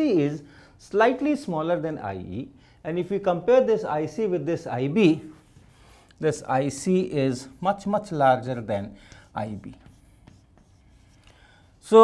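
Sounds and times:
chalk writing on blackboard: 5.2 - 11.7.

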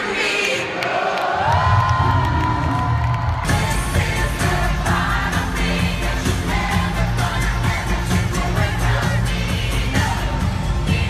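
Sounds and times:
crowd cheering: 0.0 - 5.3
live pop music over pa: 3.3 - 11.0.

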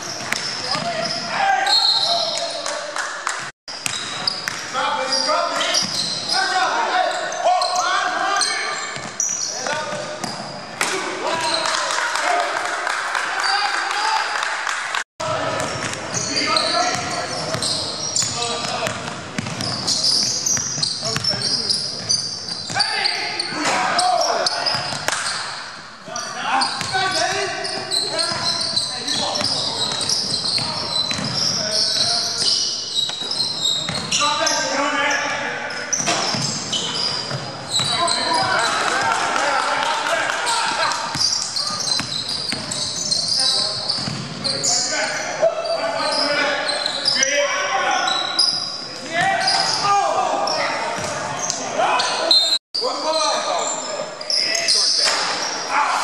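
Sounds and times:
players calling out: 0.1 - 2.8, 4.0 - 14.4, 15.2 - 56.0.

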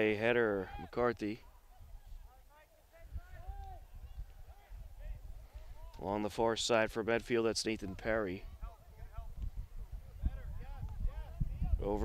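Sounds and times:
distant shouts of players: 0.4 - 6.0.

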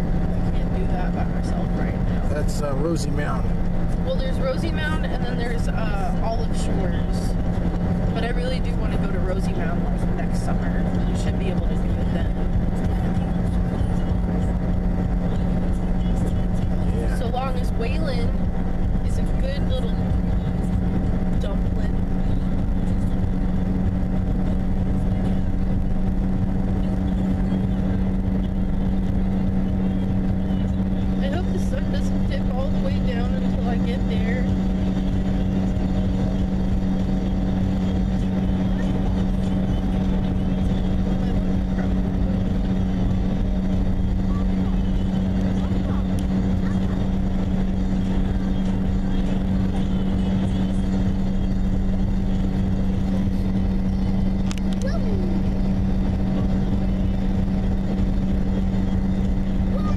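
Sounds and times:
car engine and tyre drone: 0.0 - 59.9.

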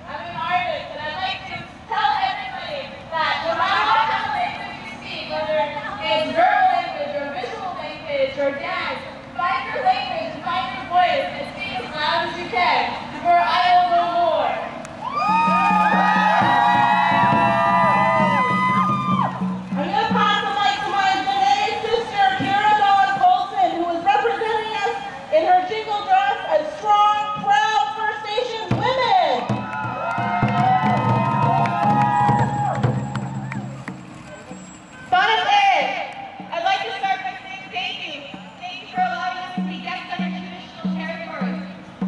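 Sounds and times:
falling whoop: 15.0 - 19.4, 29.6 - 33.6.

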